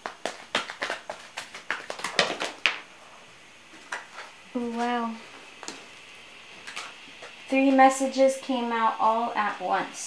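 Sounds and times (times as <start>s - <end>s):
cards being shuffled by hand: 0.0s - 2.9s, 3.7s - 5.0s.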